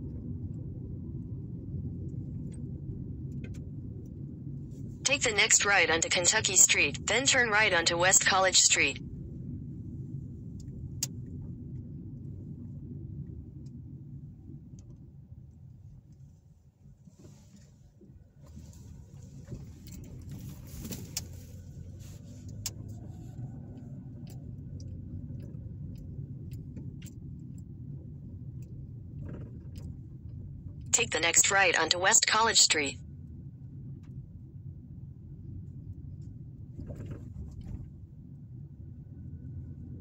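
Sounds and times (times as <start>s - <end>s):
car tyres and engine rumble: 9.0s - 30.9s, 33.1s - 40.0s.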